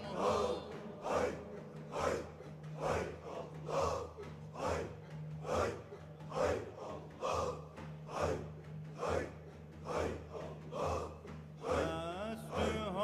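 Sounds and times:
group chanting breathy exhalations: 0.0 - 12.8.

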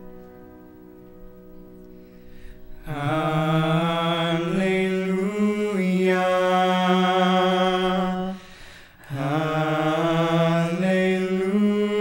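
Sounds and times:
male voices singing in harmony: 2.8 - 12.0.

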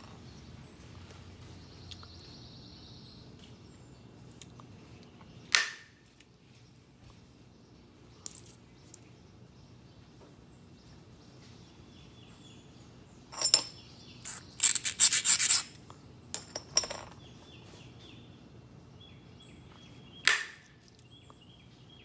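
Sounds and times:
faint birds chirping: 0.0 - 22.0
scraping strokes on stone edge: 14.2 - 15.8.

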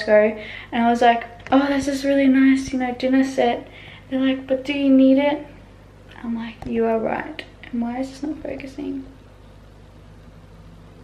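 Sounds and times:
low hum with faint hiss: 0.0 - 11.0.

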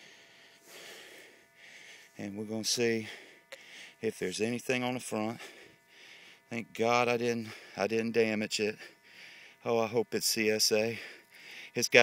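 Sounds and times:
man breathing softly: 0.0 - 2.2, 3.0 - 4.0, 5.4 - 6.5, 7.4 - 7.8, 8.8 - 9.6, 11.0 - 11.8.

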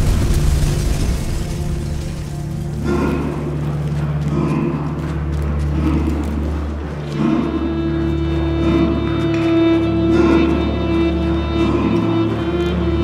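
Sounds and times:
dramatic orchestral film score: 0.0 - 13.0
boots running on dirt: 1.5 - 13.0.

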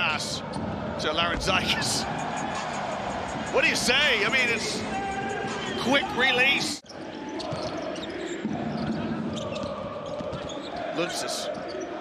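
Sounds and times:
crowd hum: 0.5 - 6.3.

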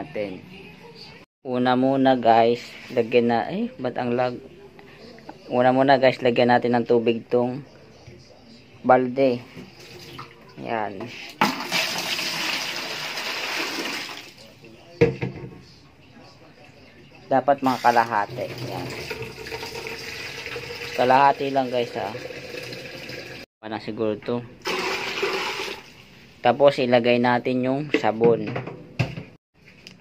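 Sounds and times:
water pouring into plastic tub: 11.4 - 14.4, 17.8 - 21.1, 24.7 - 26.0.

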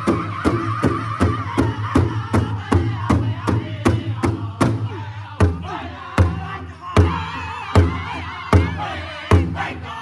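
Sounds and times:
large drum steady beat: 0.0 - 9.9.

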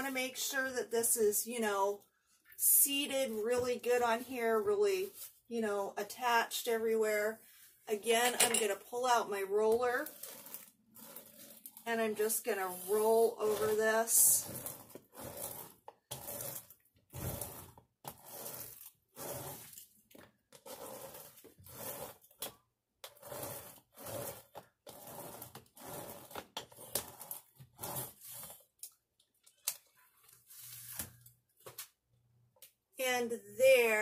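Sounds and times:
hand roller rolling on rough surface: 8.1 - 28.6.

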